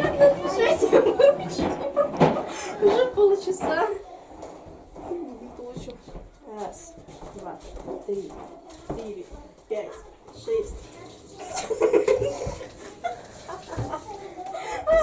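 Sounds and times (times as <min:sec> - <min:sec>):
girls' voices: 0:00.0 - 0:15.0.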